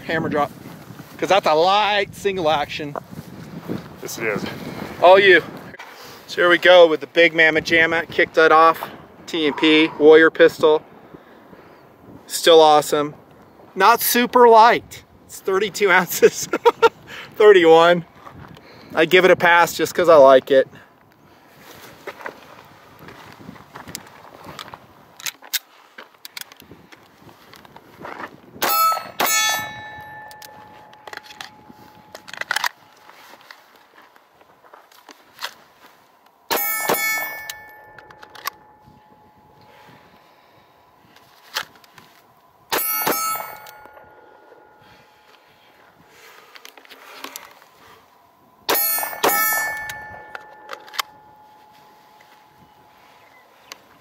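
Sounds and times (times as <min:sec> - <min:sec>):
steel targets ringing: 0:28.6 - 0:33.0, 0:36.5 - 0:40.0, 0:42.7 - 0:46.3, 0:48.7 - 0:53.6.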